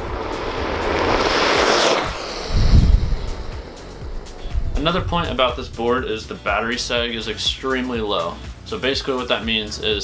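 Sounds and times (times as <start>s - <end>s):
skateboard wheels rolling past: 0.0s - 4.9s
wind rumble on microphone: 0.0s - 7.1s.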